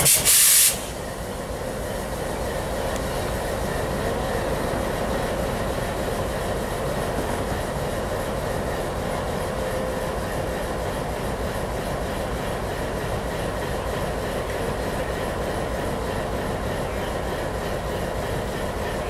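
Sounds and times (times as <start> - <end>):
diesel locomotive engine running: 0.0 - 19.0.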